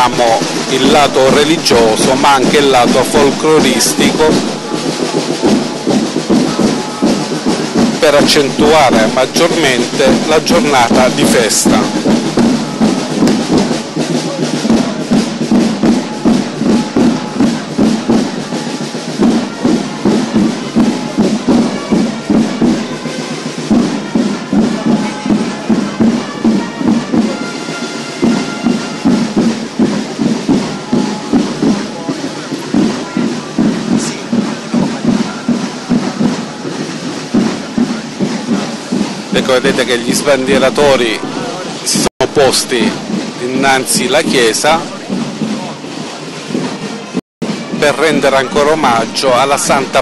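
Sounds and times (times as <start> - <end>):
drums beating march rhythm: 0.0 - 50.0.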